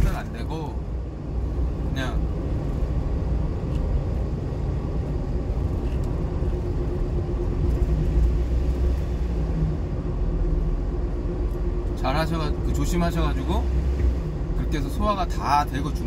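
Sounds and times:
engine and road rumble in truck: 0.0 - 16.0.

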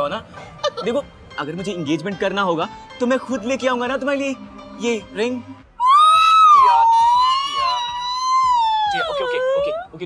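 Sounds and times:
woman wailing: 5.8 - 9.9.

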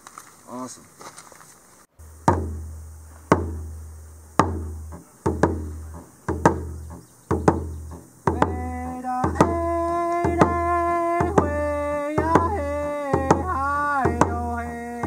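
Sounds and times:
hand drum beating: 2.2 - 3.7, 4.4 - 15.0.

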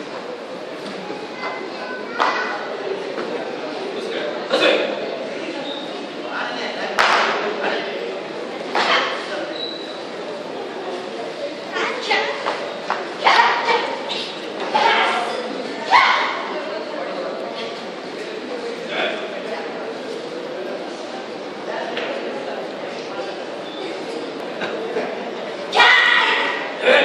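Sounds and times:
background of many voices: 0.0 - 27.0
crowd murmur in a large hall: 0.0 - 27.0
loud shout: 15.8 - 16.5, 25.7 - 27.0.

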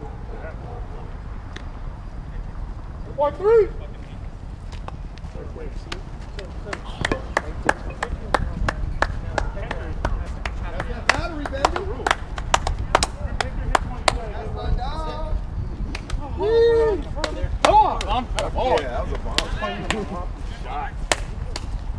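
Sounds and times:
wind rumble on microphone: 0.0 - 21.9
people clapping: 5.8 - 14.3, 15.9 - 16.3, 17.0 - 20.2, 21.0 - 21.8
loud held yell: 16.2 - 18.0
people shouting: 16.2 - 20.1.

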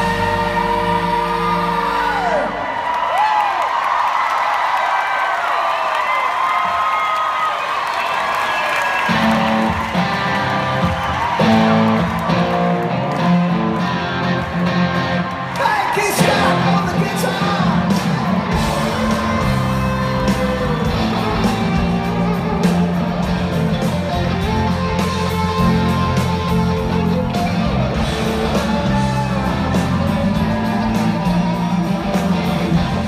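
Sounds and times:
rock band playing: 0.0 - 2.6, 9.0 - 33.0
person singing: 0.0 - 2.7, 15.6 - 23.3
audience whooping: 0.8 - 33.0.

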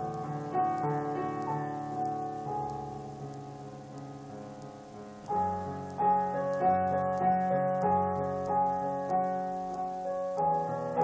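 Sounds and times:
soft solo piano: 0.0 - 11.0.

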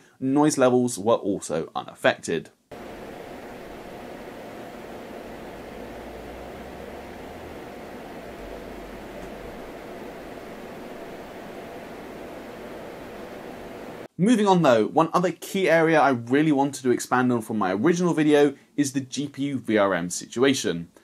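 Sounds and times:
computer cooling fans running: 2.7 - 14.1.

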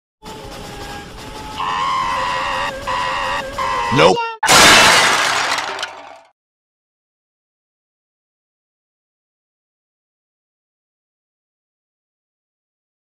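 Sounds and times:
person shouting: 3.9 - 4.5
glass shattering: 4.4 - 6.3.

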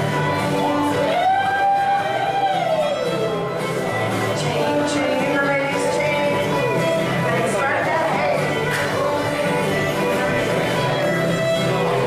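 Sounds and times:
dance band music with guitar: 0.0 - 12.0.

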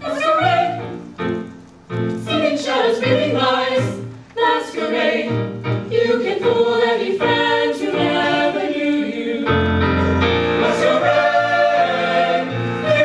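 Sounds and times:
mixed-voice ensemble singing: 0.0 - 1.1, 2.2 - 13.0.

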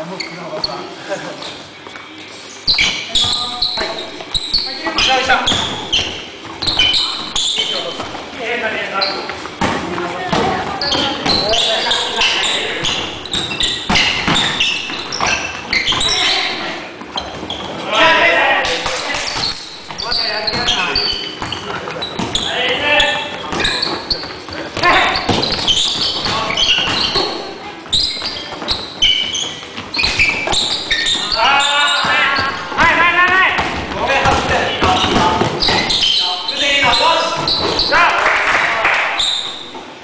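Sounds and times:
feet on wooden gym floor: 0.0 - 38.2
basketballs bouncing: 2.7 - 8.4, 9.1 - 17.9, 18.6 - 38.0.

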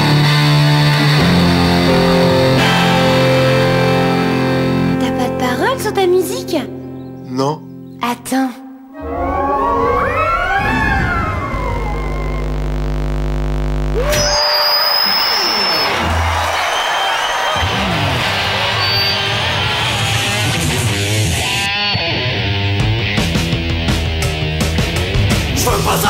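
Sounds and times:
electric guitar music: 0.0 - 8.0, 17.6 - 25.6
rock beat: 17.4 - 26.0.

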